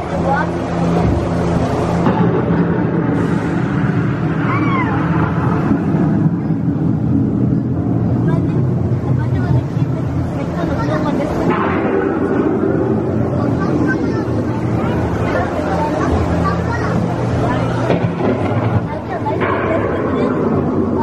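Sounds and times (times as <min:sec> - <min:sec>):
indistinct voices: 0:00.0 - 0:21.0
low hum of ride boat: 0:00.0 - 0:21.0
rising and falling cry: 0:04.1 - 0:05.8.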